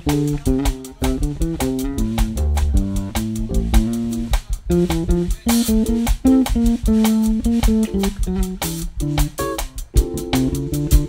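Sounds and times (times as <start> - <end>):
drum kit cymbals: 0.0 - 11.0
electric bass solo: 0.0 - 11.0.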